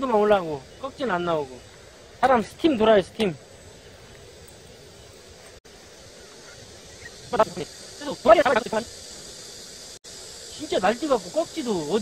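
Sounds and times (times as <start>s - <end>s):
person speaking: 0.0s - 3.4s, 7.3s - 8.9s, 10.5s - 12.0s
high-pitched insect drone: 0.0s - 12.0s.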